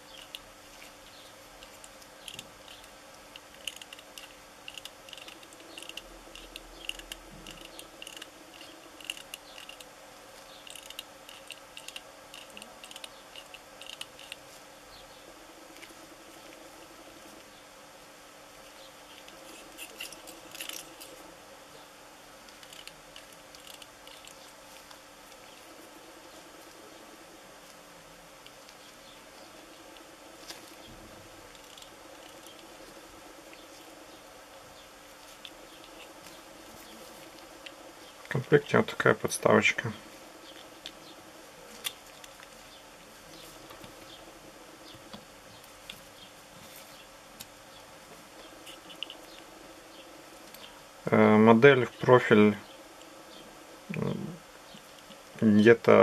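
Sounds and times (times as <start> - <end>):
faint buzzing hum: 0.0 - 56.0
small plastic parts clicking: 1.6 - 14.4, 22.5 - 25.4.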